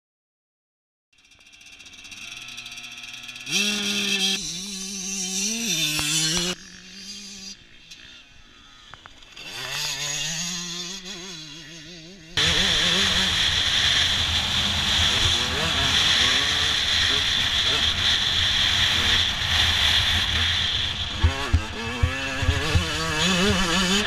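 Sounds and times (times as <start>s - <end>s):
motorcycle engine revving: 1.2s - 24.0s
wind rush on helmet camera: 12.4s - 24.0s.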